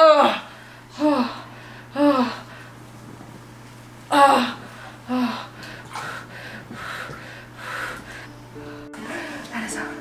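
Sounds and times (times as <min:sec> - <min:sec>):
woman moaning: 0:00.0 - 0:02.5, 0:04.1 - 0:05.6
woman breathing heavily: 0:00.3 - 0:02.8, 0:04.2 - 0:09.6.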